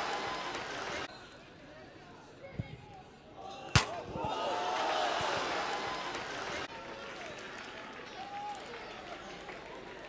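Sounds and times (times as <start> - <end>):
crowd cheering: 0.0 - 1.1, 3.8 - 10.0
football thump: 3.8 - 4.3.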